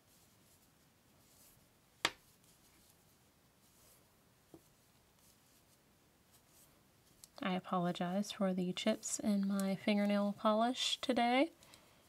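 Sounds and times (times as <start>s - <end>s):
knitting needles scratching: 0.0s - 11.8s.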